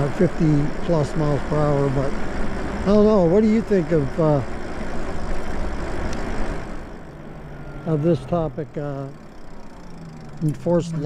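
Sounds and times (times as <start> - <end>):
tyre and road noise: 0.0 - 11.0.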